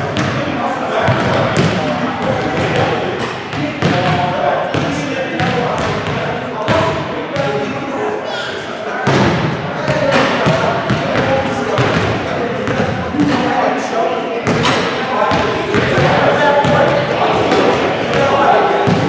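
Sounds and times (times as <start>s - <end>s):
many voices talking: 0.0s - 19.0s.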